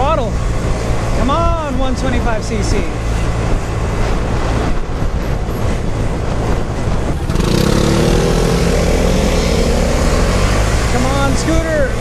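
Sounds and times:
road rumble: 0.0s - 12.0s
wind: 0.0s - 12.0s
scooter engine at full throttle: 4.4s - 12.0s.

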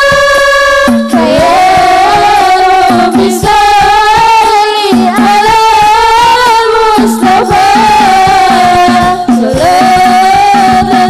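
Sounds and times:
frame drums beating: 0.0s - 11.0s
woman singing into microphone: 0.0s - 11.0s.

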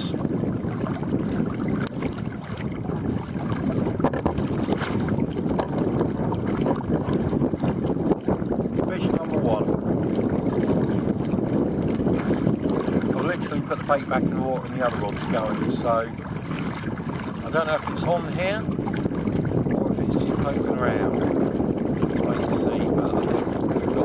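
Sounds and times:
choppy sea water: 0.0s - 24.0s
wind buffeting microphone: 0.0s - 24.0s.

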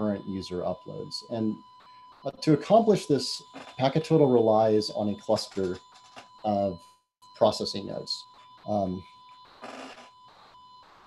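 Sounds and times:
faint electrical whine: 0.0s - 6.8s, 7.4s - 11.0s.

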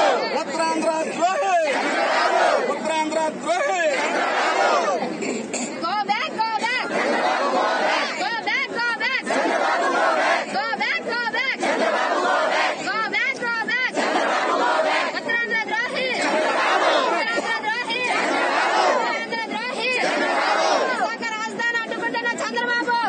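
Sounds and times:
crowd shouting slogans: 0.0s - 5.2s, 6.1s - 23.0s.

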